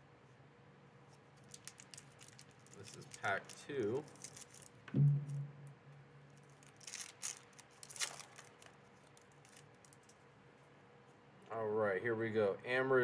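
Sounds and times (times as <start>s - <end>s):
foil wrapper tearing and crinkling: 1.4s - 4.8s, 6.4s - 10.2s.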